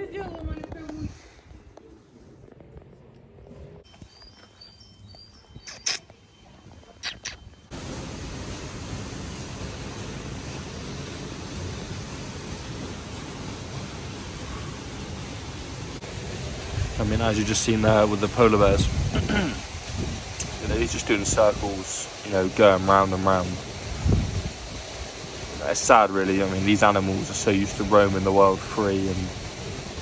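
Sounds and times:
short high chirps: 3.9s - 7.7s
sharp clicks: 5.7s - 6.0s, 7.0s - 7.4s
loud steady rushing noise: 7.8s - 30.0s.

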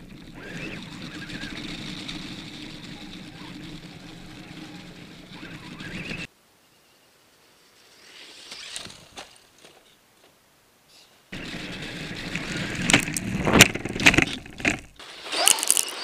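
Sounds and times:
skis knocking over bumps: 0.0s - 6.3s, 11.4s - 15.9s
skis scraping over snow: 0.0s - 6.3s, 11.3s - 16.0s.

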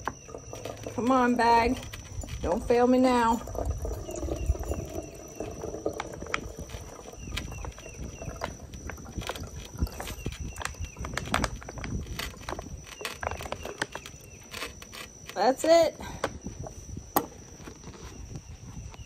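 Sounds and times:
liquid dripping into glass jar: 0.0s - 15.2s.

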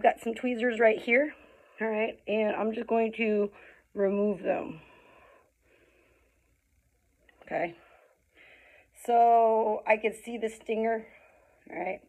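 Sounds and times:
faint breathing: 1.3s - 1.8s, 3.5s - 4.0s, 4.7s - 6.8s, 7.7s - 9.0s, 11.0s - 11.7s.

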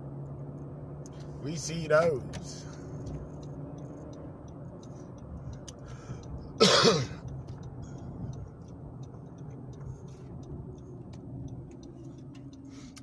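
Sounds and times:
car engine and road hum: 0.0s - 13.0s
faint ticking: 2.2s - 13.0s
man coughing: 6.6s - 7.2s.

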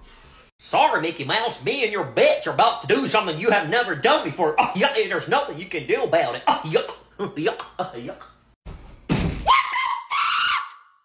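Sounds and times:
man screaming: 9.5s - 10.9s.

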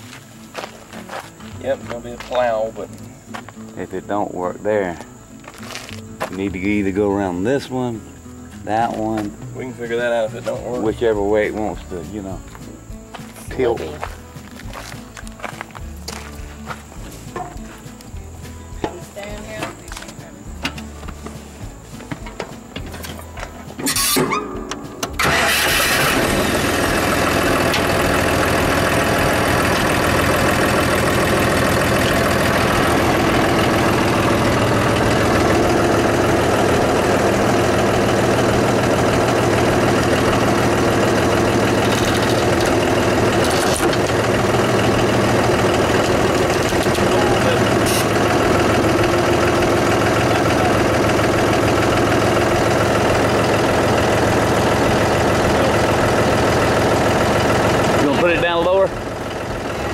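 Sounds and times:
vehicle engine starting and running: 19.4s - 59.9s.

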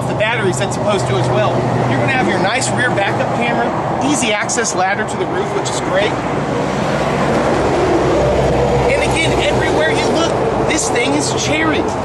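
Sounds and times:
loud engine drone: 0.0s - 12.0s.

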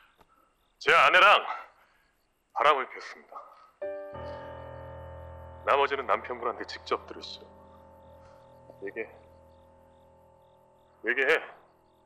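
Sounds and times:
crickets chirping: 0.0s - 12.0s
soft held music tone: 3.8s - 12.0s.

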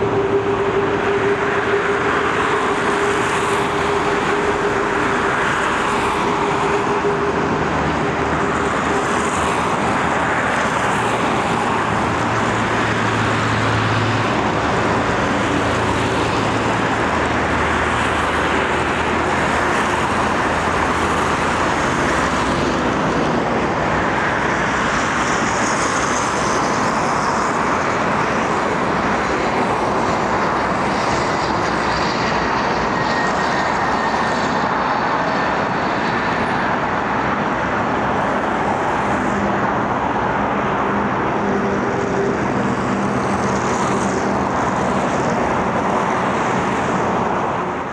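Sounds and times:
jet engine passing overhead: 0.0s - 47.9s.

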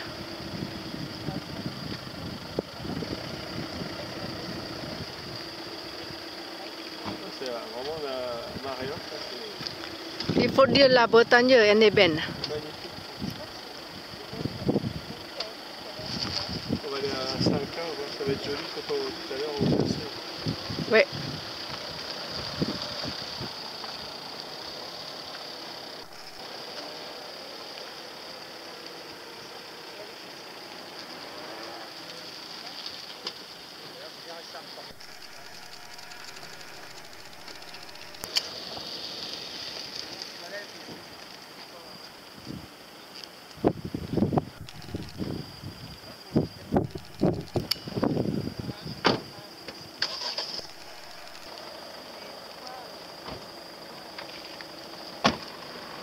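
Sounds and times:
wind buffeting microphone: 0.0s - 5.5s, 13.2s - 15.2s, 19.6s - 23.6s, 43.6s - 49.0s
steady high-pitched hiss: 0.0s - 56.0s.

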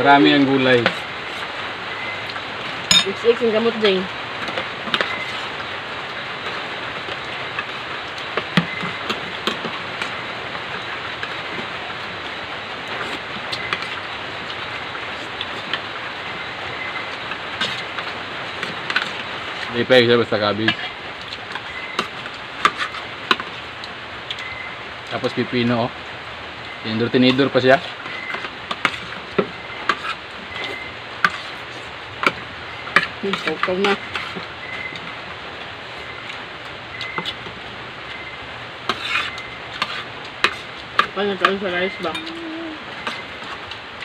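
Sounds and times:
cutlery clinking on plates: 2.9s - 3.2s.

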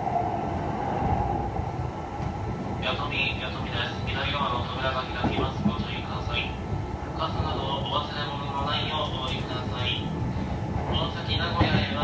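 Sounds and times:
wheels rumbling on rail: 0.0s - 12.0s.

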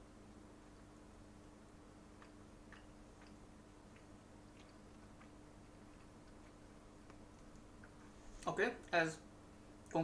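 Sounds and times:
steady low hum: 0.0s - 10.0s
sticky mouth clicks chewing: 2.1s - 8.0s.

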